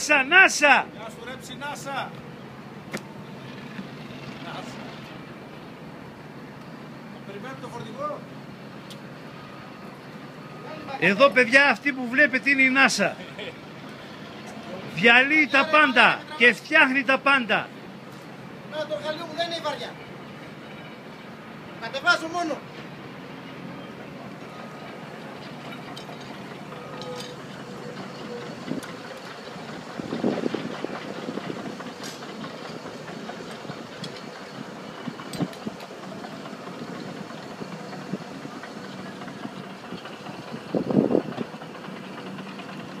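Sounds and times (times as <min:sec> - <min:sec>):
heavy machinery running: 0:00.0 - 0:43.0
clicks and clanks: 0:25.4 - 0:29.7, 0:30.5 - 0:40.7.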